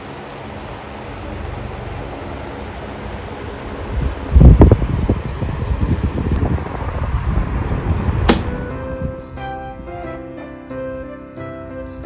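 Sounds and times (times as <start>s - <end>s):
fan airflow gusts on microphone: 0.0s - 10.2s
sharp click: 8.3s - 8.6s.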